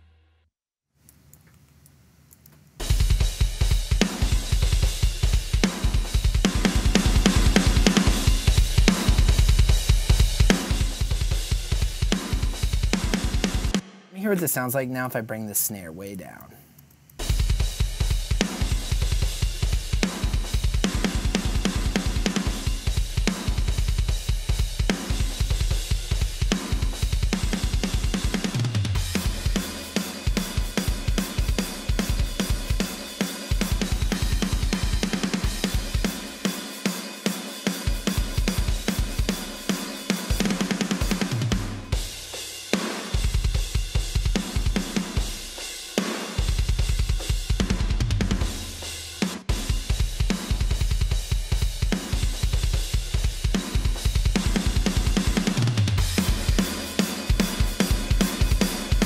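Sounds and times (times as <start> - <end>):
fast kick drum: 2.8 - 14.5, 17.2 - 36.5, 37.8 - 42.5, 43.1 - 59.0
cymbals and hi-hat: 2.8 - 15.2, 17.2 - 59.0.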